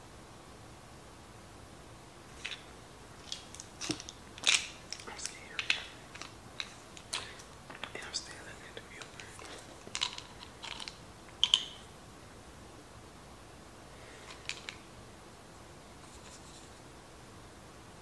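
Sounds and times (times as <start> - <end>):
rustles of small items: 2.3 - 11.9, 14.0 - 14.9
clicks of small items handled: 2.4 - 8.1, 9.0 - 11.8, 14.2 - 14.8.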